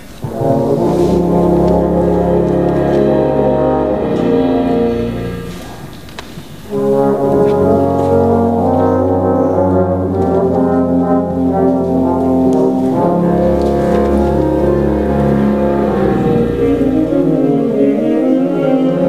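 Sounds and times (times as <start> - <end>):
wind ensemble playing chords: 0.0 - 19.0.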